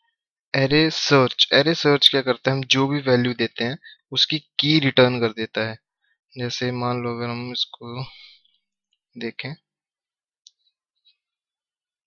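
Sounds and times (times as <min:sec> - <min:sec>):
man speaking: 0:00.6 - 0:05.8, 0:06.4 - 0:08.3, 0:09.2 - 0:09.7.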